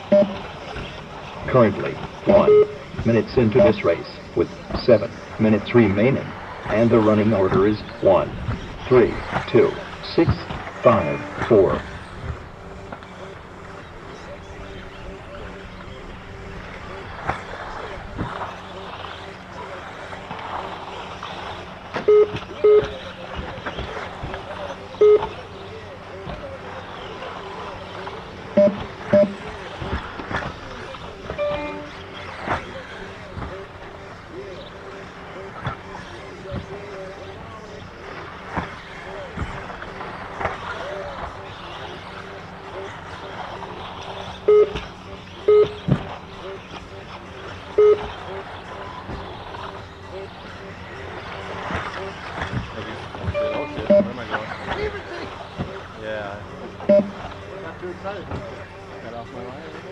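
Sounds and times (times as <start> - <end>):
short electronic beeps: 0.1 - 0.4, 2.3 - 2.8, 10.8 - 11.5, 22.1 - 23.0, 25.0 - 25.3, 28.6 - 29.4, 31.4 - 32.0, 44.5 - 44.8, 45.4 - 45.8, 47.8 - 48.1, 53.3 - 54.2, 56.9 - 57.2
rc buggies running: 32.0 - 59.9.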